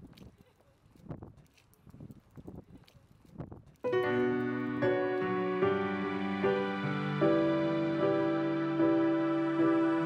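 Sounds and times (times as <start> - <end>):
grand piano chord: 3.9 - 10.0.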